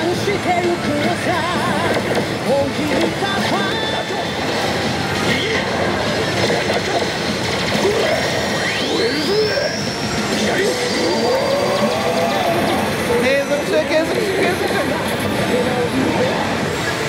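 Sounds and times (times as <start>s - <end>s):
slot machines electronic din: 0.0s - 17.0s
slot machine effects: 1.8s - 17.0s.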